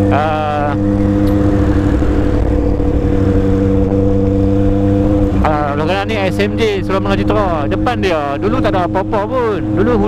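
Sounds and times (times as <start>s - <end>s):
motorcycle engine cruising: 0.0s - 10.0s
road noise: 0.0s - 10.0s
wind noise: 0.8s - 7.8s.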